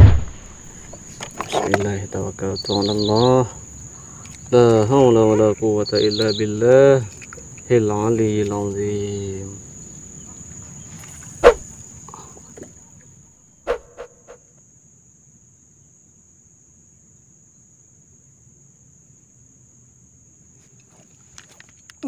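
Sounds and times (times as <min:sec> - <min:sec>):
insects droning: 0:00.0 - 0:22.0.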